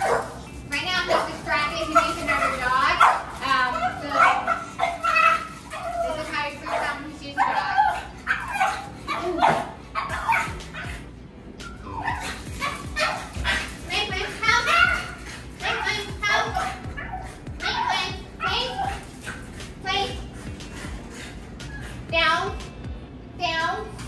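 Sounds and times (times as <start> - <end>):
dog whining and barking: 3.8 - 13.7.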